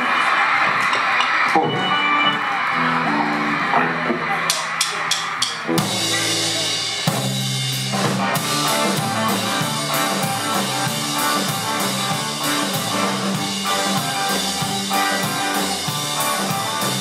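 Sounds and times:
band playing: 0.0s - 17.0s
crowd noise: 0.0s - 17.0s
guitar and bass notes: 1.5s - 17.0s
drum-kit hits: 4.0s - 17.0s.

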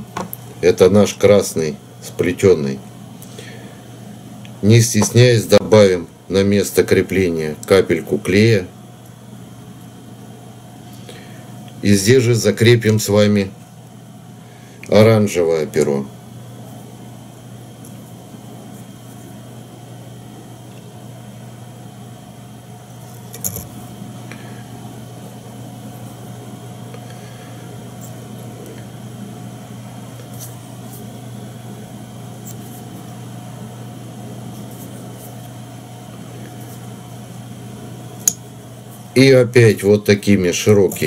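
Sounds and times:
electrical room hum: 0.0s - 41.0s.

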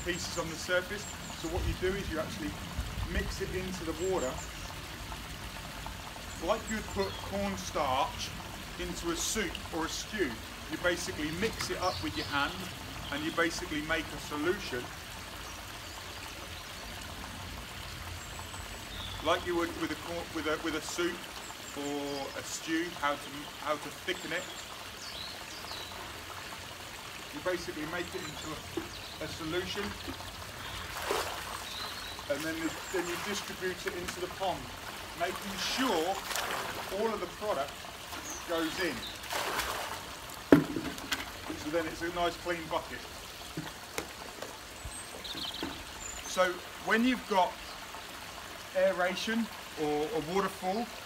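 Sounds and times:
waterfall splashing into pond: 0.0s - 51.0s
liquid splashing into pond: 23.5s - 46.8s
bucket knocking on stone: 40.5s - 41.6s.

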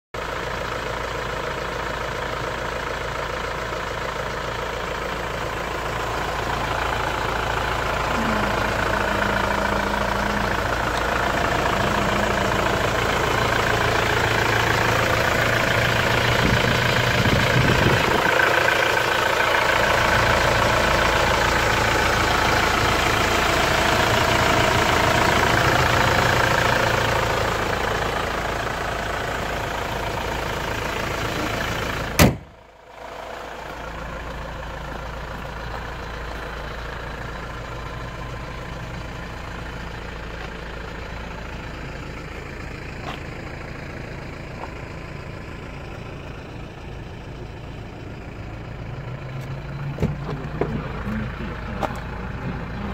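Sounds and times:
car engine idling: 0.2s - 52.9s.

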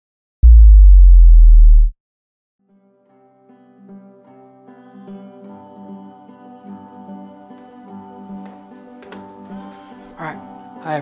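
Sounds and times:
deep synthesized bass hit: 0.4s - 1.9s.

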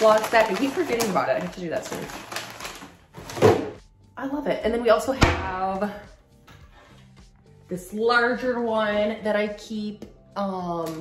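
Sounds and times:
plastic food packets rustling: 0.0s - 3.7s.

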